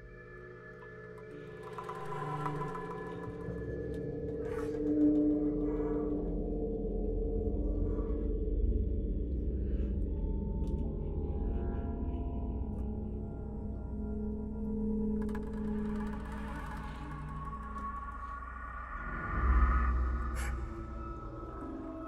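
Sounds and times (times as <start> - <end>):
chamber music sustained tones: 0.0 - 7.6
breathy airy flute sounds: 15.2 - 22.0.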